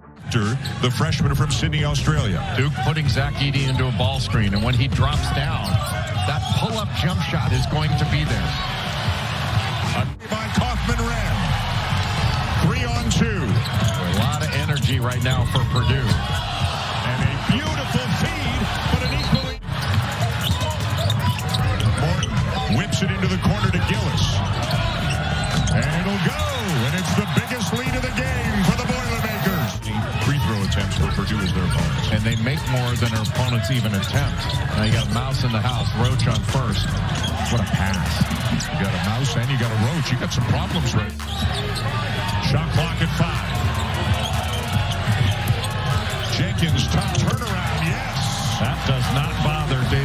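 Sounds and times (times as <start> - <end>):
crowd shouting and cheering: 0.0 - 50.0.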